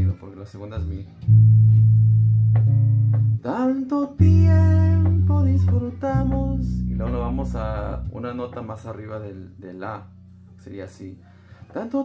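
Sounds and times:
electric bass notes plucked: 0.8s - 11.0s.

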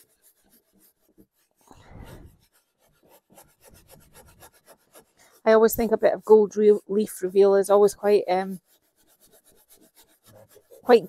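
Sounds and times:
brush bristles scratching: 0.0s - 11.0s.

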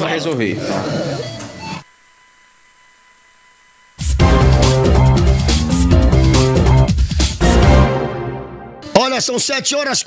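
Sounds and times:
faint electronic whine: 1.2s - 5.5s.

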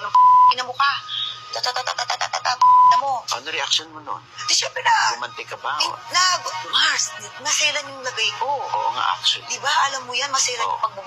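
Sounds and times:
loud steady beep: 0.1s - 0.7s, 2.6s - 3.2s.

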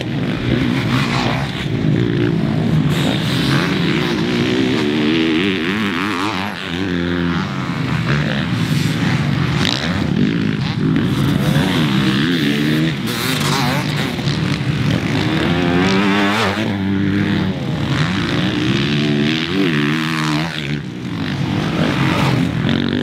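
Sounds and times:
motocross bike engines revving: 0.0s - 23.0s.

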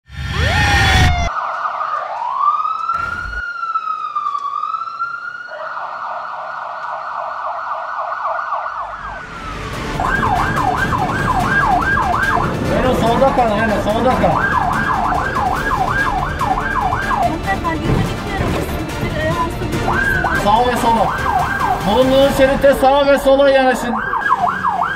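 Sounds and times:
electronic siren wailing: 0.1s - 17.4s, 19.8s - 24.9s
ambulance siren yelping: 0.2s - 24.9s
traffic noise: 2.8s - 24.9s.

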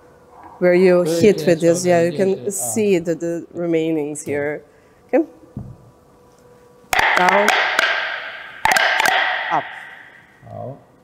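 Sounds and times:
wooden molds knocking on steel table: 7.0s - 10.2s.

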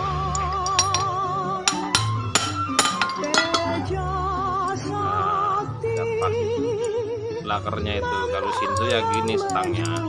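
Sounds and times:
background music with vibrato melody: 0.0s - 10.0s
sharp metallic clinks: 0.6s - 1.1s, 1.7s - 3.8s.

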